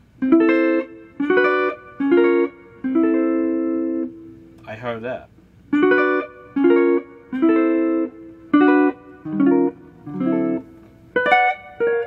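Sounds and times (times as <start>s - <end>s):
clean electric guitar chord stabs: 0.0s - 4.8s, 5.7s - 12.0s.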